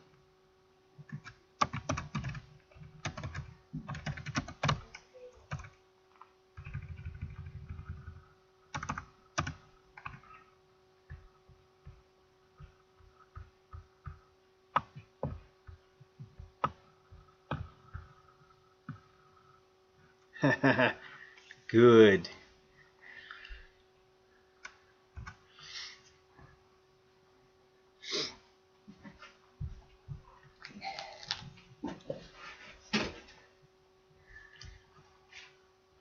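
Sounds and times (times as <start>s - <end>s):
steady electrical hum: 0.0s - 36.0s
typing on computer keyboard: 1.0s - 5.8s, 6.6s - 10.4s.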